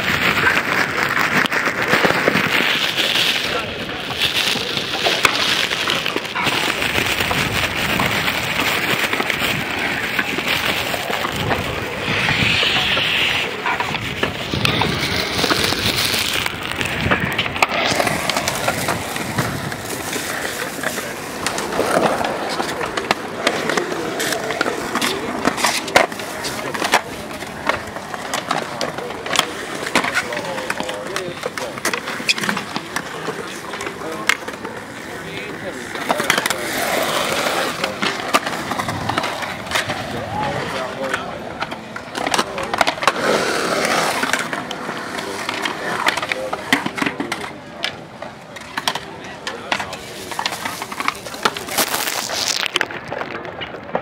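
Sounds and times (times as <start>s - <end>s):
skateboard clicks and clacks: 0.0s - 54.0s
skateboard wheels rolling on concrete: 0.0s - 54.0s
voices: 0.0s - 54.0s.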